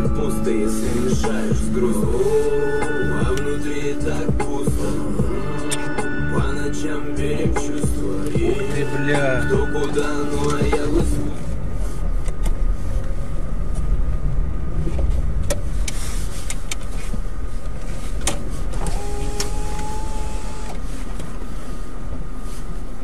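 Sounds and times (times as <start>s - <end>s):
flat tone: 0.0s - 11.4s
car engine and road rumble: 0.0s - 23.0s.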